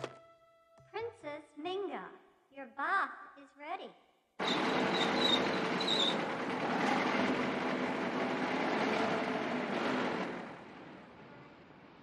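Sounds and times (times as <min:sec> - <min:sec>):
small car driving up and stopping: 0:04.4 - 0:11.7.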